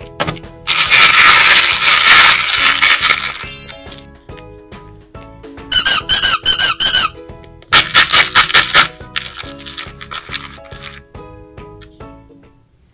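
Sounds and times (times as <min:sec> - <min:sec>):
rubber squeeze toys squeaking: 0:00.7 - 0:04.1, 0:05.7 - 0:10.6.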